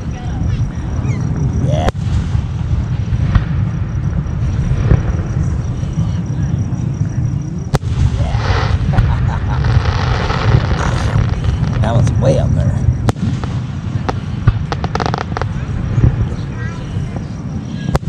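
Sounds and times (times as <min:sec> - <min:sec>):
distant fireworks rumble: 0:00.0 - 0:18.0
firework cracks: 0:01.3 - 0:06.0, 0:07.0 - 0:18.0.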